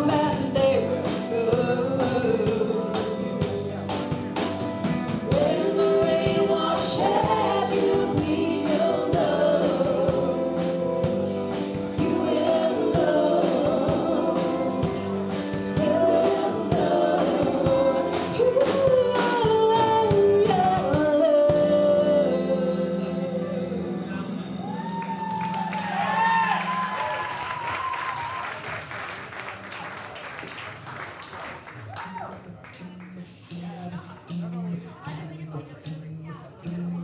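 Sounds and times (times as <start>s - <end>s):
woman singing: 0.0s - 4.1s, 5.3s - 24.2s
steady drum beat: 0.0s - 22.0s
bass: 0.0s - 29.8s, 31.7s - 37.0s.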